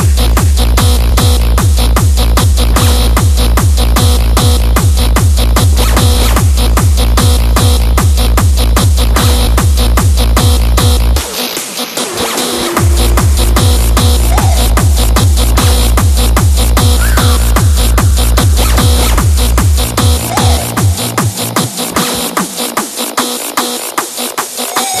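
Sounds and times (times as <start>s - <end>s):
distorted kick drum: 0.0s - 25.0s
hi-hats and claps: 0.0s - 25.0s.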